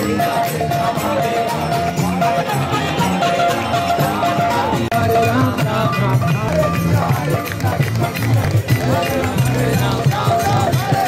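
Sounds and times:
crowd chanting and singing: 0.0s - 11.0s
loud music: 0.0s - 11.0s.

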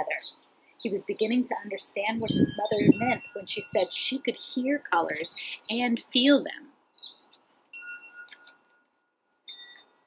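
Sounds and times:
faint ringing chime: 7.7s - 10.0s.

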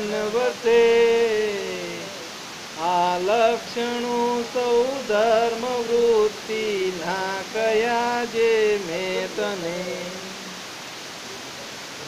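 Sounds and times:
person chanting: 0.0s - 10.6s
steady background hiss: 0.0s - 12.0s.

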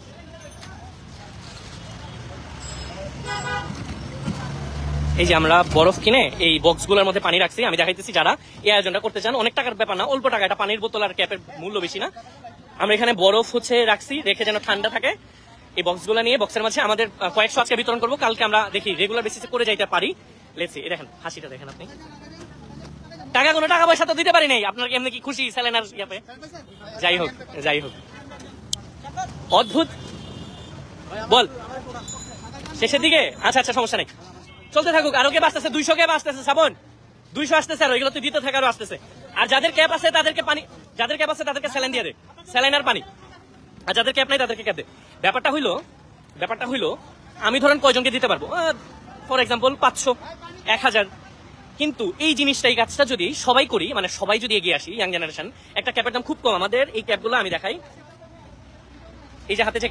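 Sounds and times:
road traffic rumble: 0.0s - 59.9s
vehicle horn honking: 3.2s - 3.8s, 29.5s - 30.8s.

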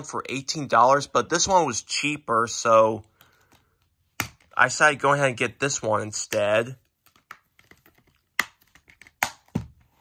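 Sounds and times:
plastic cases clicking and tapping: 3.0s - 4.6s, 6.3s - 10.0s.

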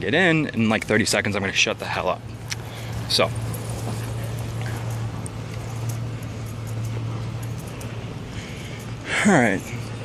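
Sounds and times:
diesel engine idling: 0.0s - 10.0s
outdoor background noise: 0.0s - 10.0s.

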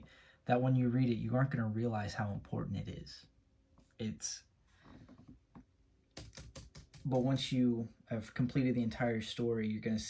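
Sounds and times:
typing on laptop keyboard: 6.1s - 7.2s.

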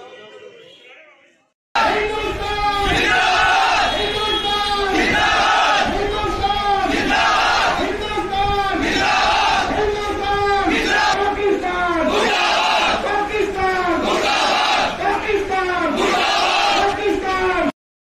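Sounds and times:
crowd shouting slogans: 1.8s - 17.7s.

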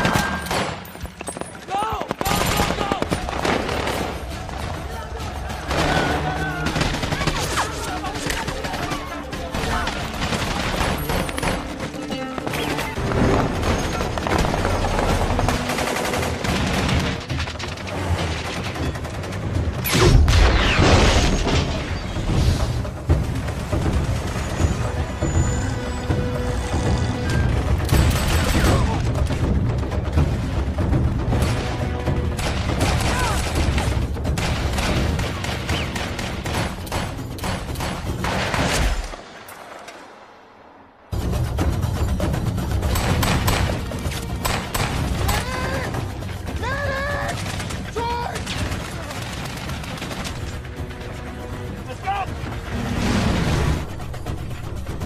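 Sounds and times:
rifle and machine-gun fire: 0.0s - 4.7s, 5.6s - 11.8s, 13.0s - 20.8s, 47.3s - 50.6s
film music score: 0.0s - 55.0s
people shouting: 1.7s - 10.1s, 32.9s - 33.6s, 45.2s - 49.2s
rapid gunfire: 2.0s - 4.7s, 5.5s - 11.9s, 13.1s - 20.8s, 42.8s - 45.4s, 47.3s - 50.6s.

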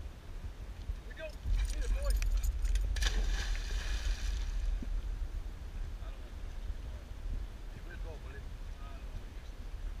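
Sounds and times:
dog splashing into lake: 2.9s - 4.6s.

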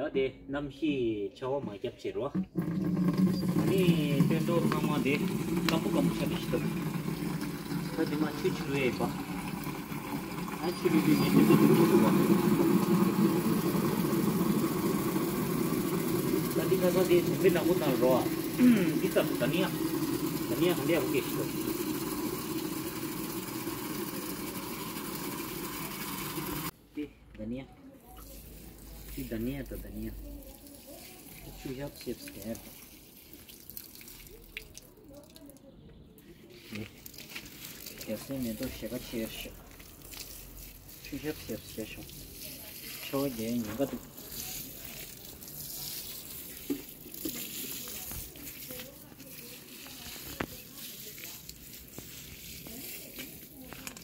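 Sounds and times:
water falling onto soil: 2.6s - 26.6s, 28.2s - 35.6s, 36.6s - 54.0s.

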